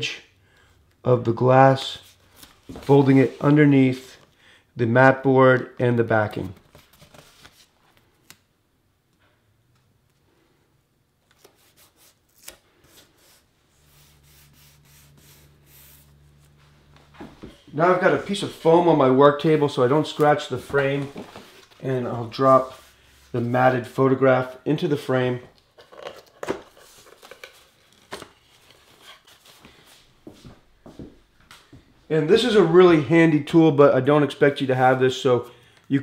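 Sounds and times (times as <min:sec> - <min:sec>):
low steady hum: 0:08.6 - 0:26.4
masking tape rubbed on glass: 0:13.1 - 0:16.2.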